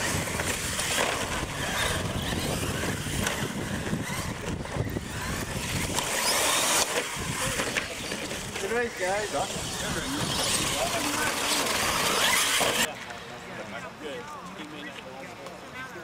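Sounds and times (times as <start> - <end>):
toy truck motors whining: 0.0 - 12.9
tyre and drivetrain rush: 0.0 - 13.2.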